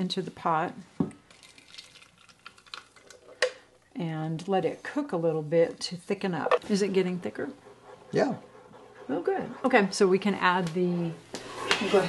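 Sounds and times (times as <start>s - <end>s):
thick sauce pouring into pot: 1.2s - 3.7s.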